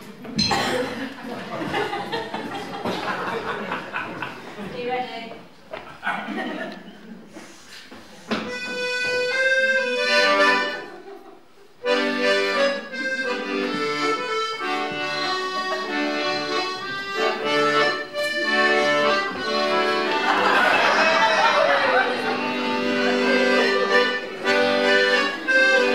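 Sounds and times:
accordion playing a tune: 8.4 - 25.9.

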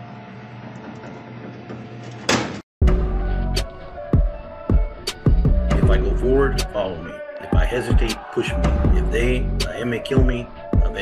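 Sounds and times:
heavy bass music hit: 2.8 - 6.7, 7.6 - 11.0.

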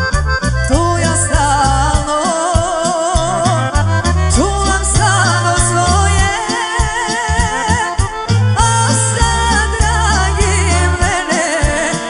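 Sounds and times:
accordion melody: 0.0 - 12.0
bass line: 0.0 - 12.0
steady drum beat: 0.0 - 12.0.

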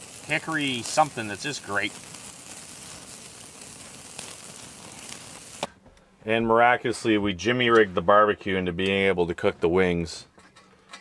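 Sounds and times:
campfire crackles: 0.0 - 5.8
steak sizzling: 0.0 - 5.8.

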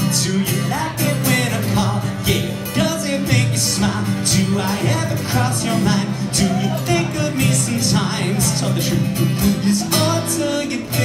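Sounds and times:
acoustic guitar strumming: 0.0 - 11.0
person singing: 0.0 - 11.0.

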